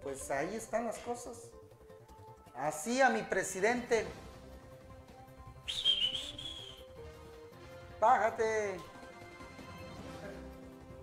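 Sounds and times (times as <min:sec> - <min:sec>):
faint background music: 0:00.0 - 0:11.0
high whistle: 0:05.6 - 0:07.0.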